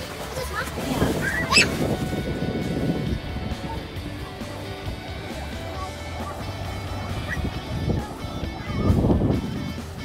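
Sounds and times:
water splashing: 0.0 - 10.0
child shrieking: 1.2 - 1.8.

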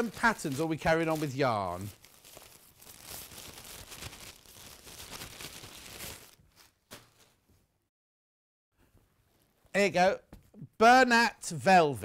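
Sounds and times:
plastic wrapping crinkling: 0.0 - 7.4.

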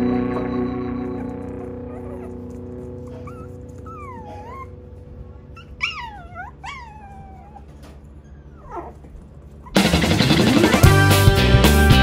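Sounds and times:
puppies whining: 0.2 - 9.8
puppy yips: 3.1 - 4.7, 5.6 - 9.8.

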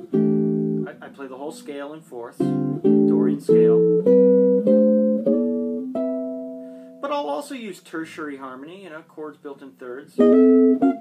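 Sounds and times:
jazz guitar chords: 0.0 - 7.0, 10.2 - 11.0.

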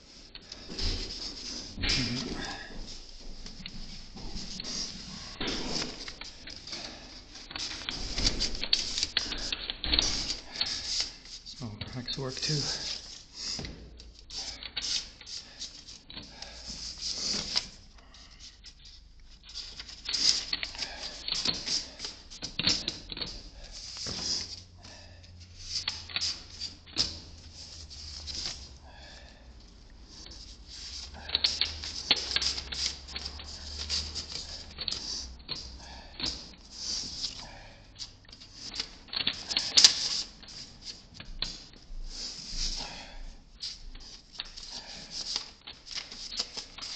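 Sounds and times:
close rustling and scraping: 0.0 - 28.8, 30.0 - 46.9
paper rustling: 43.6 - 46.9.

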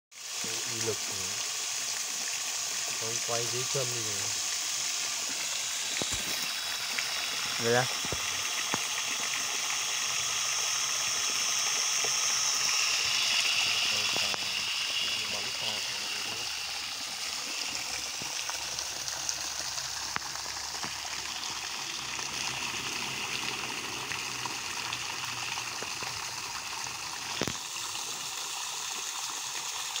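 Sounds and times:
water jet splashing onto pond: 0.1 - 30.0.

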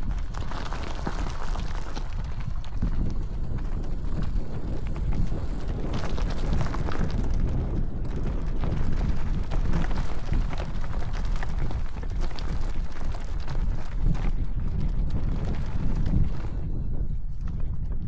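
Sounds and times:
tyres clicking on stones: 0.0 - 16.5
bike rattling: 0.0 - 18.0
wind rumbling on microphone: 0.0 - 18.0.

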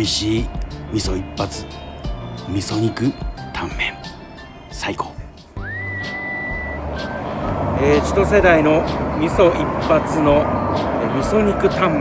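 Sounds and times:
rising whistle tone: 0.0 - 3.2, 5.6 - 7.6
street traffic rumble: 0.0 - 12.0.

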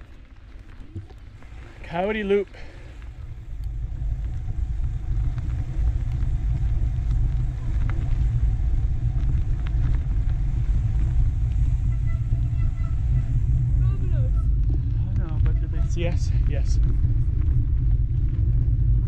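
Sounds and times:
mountain bike rumbling on dirt: 0.0 - 19.0
wind buffeting microphone: 0.8 - 19.0.

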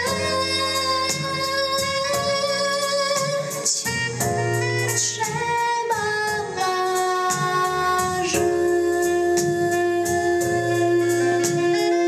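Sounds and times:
girl singing a slow ballad: 0.0 - 12.0
instrumental accompaniment: 0.0 - 12.0.

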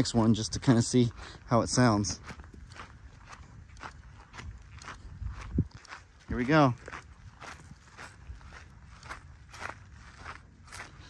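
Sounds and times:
footsteps on dry grass: 1.0 - 11.0.

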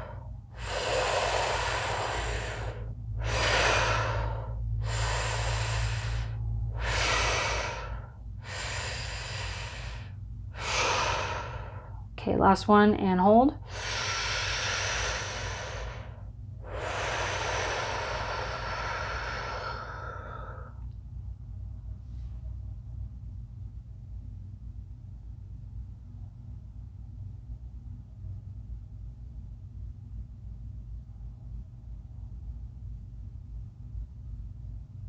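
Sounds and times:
woman breathing deeply: 0.0 - 12.2, 13.6 - 20.9
low steady hum: 0.0 - 35.0.

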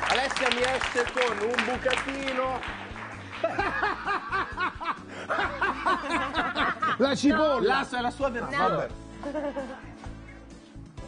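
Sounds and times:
people laughing: 3.2 - 7.6, 9.1 - 10.4.

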